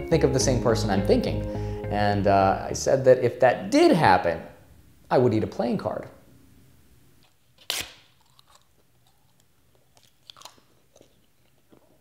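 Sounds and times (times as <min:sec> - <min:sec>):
man chewing paper card: 0:07.6 - 0:12.0.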